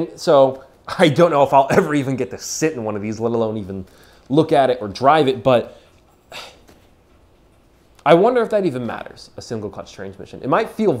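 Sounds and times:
person sniffing: 5.8s - 6.8s.

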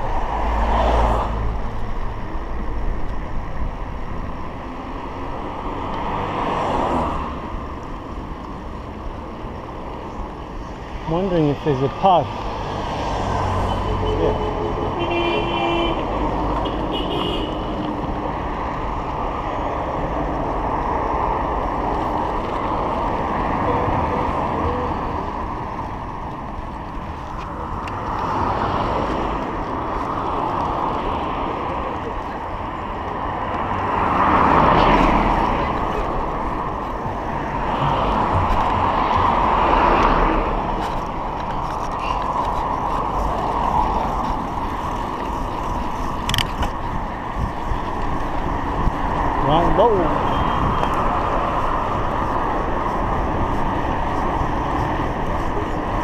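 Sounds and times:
cars passing: 0.0s - 56.0s.

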